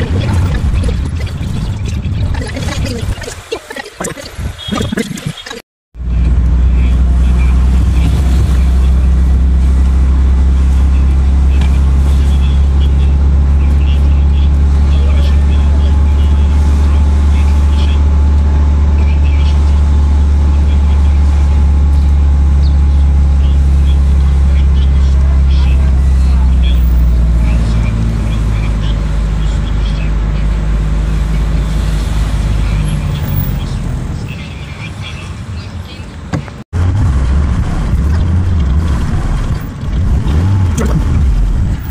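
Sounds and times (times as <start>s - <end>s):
car engine and road noise: 0.0s - 41.9s.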